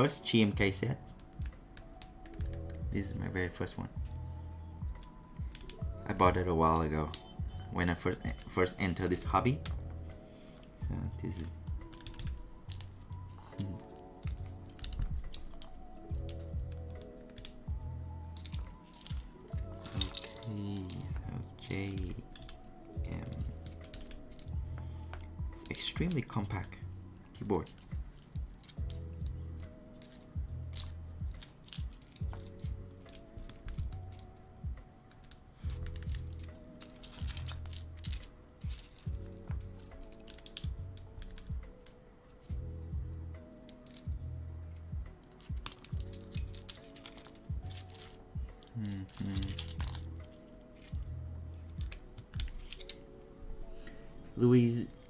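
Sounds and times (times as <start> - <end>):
lofi music with beat: 0.0 - 55.0
plastic keycaps clicking: 1.2 - 2.9, 4.9 - 5.9, 11.2 - 25.7, 27.7 - 34.4, 35.1 - 42.0.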